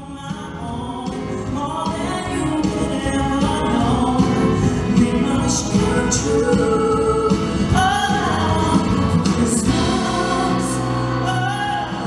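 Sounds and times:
live band and orchestra: 0:00.0 - 0:12.0
man singing lead: 0:00.0 - 0:12.0
backing singers: 0:05.1 - 0:12.0.

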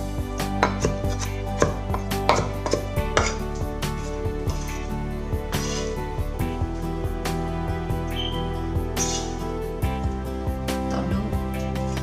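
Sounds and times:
background music: 0:00.0 - 0:12.0
knife chopping on wooden board: 0:00.6 - 0:03.4.

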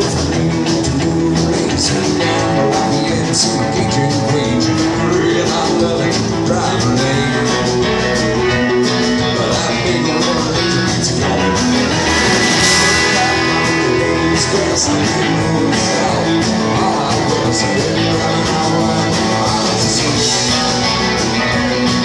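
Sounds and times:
bass guitar: 0:00.0 - 0:22.0
drums: 0:00.0 - 0:22.0
electric guitars: 0:00.0 - 0:22.0.

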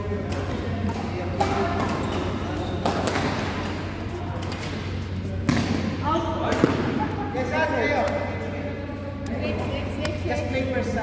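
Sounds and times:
rackets hitting shuttlecock: 0:00.1 - 0:07.0.

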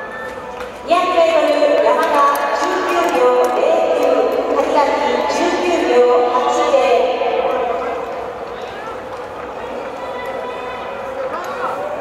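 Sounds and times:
indistinct voices in large hall: 0:00.0 - 0:12.0.

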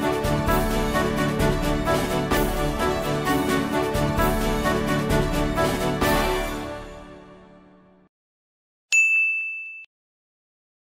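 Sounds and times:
high bell-like ding: 0:08.9 - 0:09.9.

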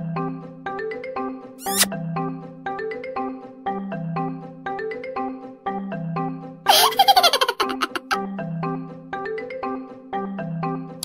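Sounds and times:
high-pitched giggling laughter: 0:06.7 - 0:08.2.

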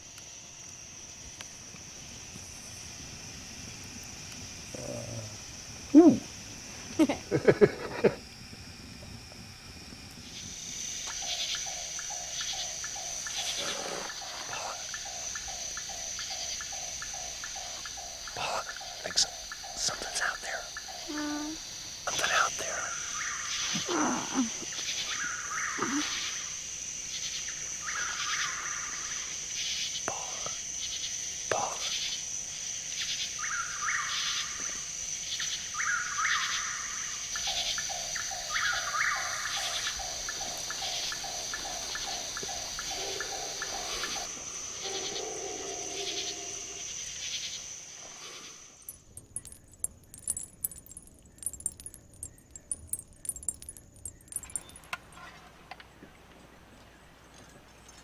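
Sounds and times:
insect chirping calls: 0:00.0 - 0:56.0
insect drone: 0:00.0 - 0:58.0
faint clicks and crackle: 0:48.8 - 0:55.9.

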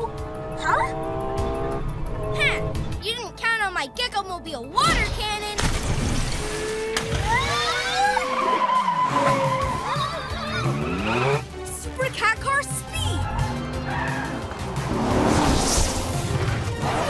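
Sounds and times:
background music: 0:00.0 - 0:17.0
cartoon race car engines: 0:06.8 - 0:12.0.

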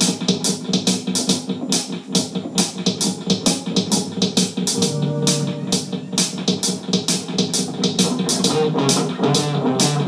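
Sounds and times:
drum beat with cymbal hits: 0:00.0 - 0:10.0.

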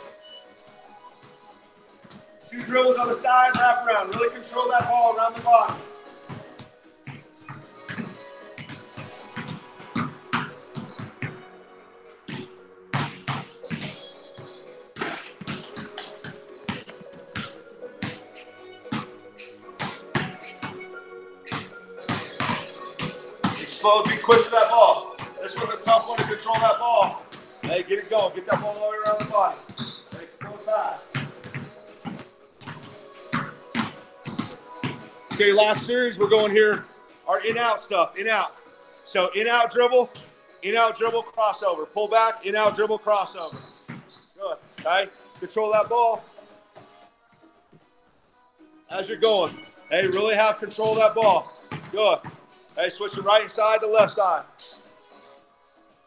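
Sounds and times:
background music with vocal: 0:00.0 - 0:42.8, 0:43.5 - 0:56.0
basketballs bouncing on concrete: 0:02.0 - 0:11.5, 0:12.2 - 0:38.0, 0:39.4 - 0:41.3, 0:42.2 - 0:47.0, 0:49.1 - 0:54.8.

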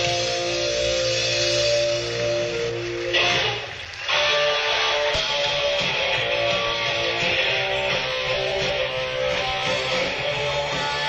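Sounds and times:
electric guitar sustained notes: 0:00.0 - 0:11.0
live rock band: 0:00.0 - 0:11.0.

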